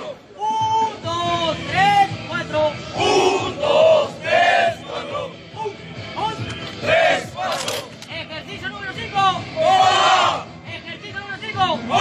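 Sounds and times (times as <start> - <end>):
men shouting together: 9.6 - 10.5, 11.8 - 12.0.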